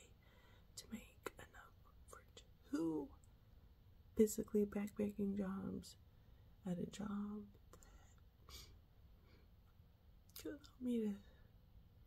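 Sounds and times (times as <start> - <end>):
woman whispering: 0.0 - 3.2, 6.6 - 8.2, 10.4 - 11.4.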